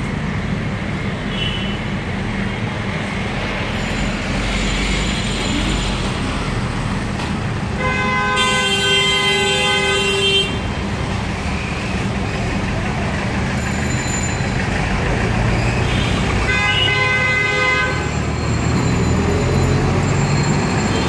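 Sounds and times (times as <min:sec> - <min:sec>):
traffic engines running: 0:00.0 - 0:21.0
vehicle horn blast: 0:07.8 - 0:10.7, 0:15.9 - 0:18.1.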